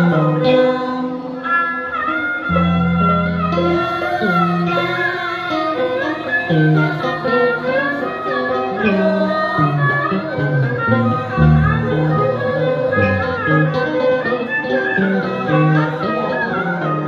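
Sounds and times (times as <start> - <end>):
person singing: 0.0 - 17.0
plucked and bowed strings: 0.0 - 17.0.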